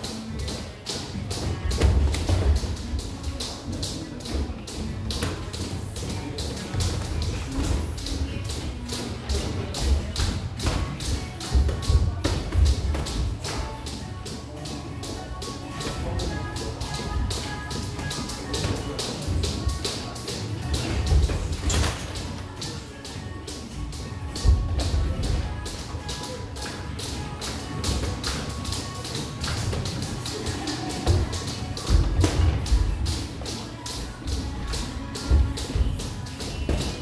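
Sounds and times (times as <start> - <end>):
boxing gloves tapping and slapping: 0.0 - 33.5, 34.3 - 37.0
background music: 0.0 - 37.0.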